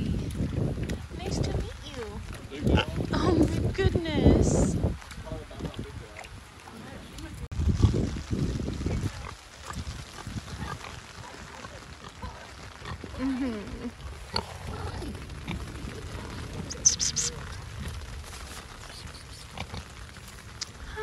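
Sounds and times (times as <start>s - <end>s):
scratchy rustle: 14.4s - 20.6s.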